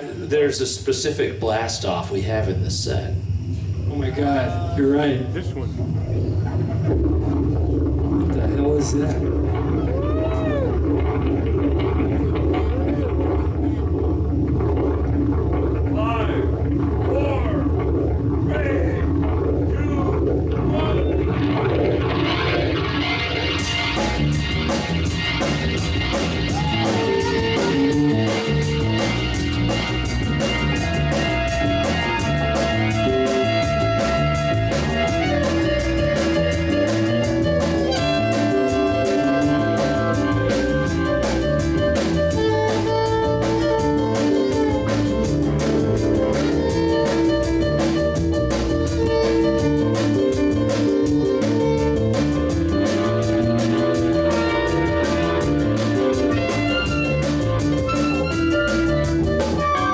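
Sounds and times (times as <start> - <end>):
electronic rocket blast-off effect: 1.2 - 59.9
live band playing: 6.8 - 18.4, 19.0 - 59.9
reed horn: 23.2 - 59.9.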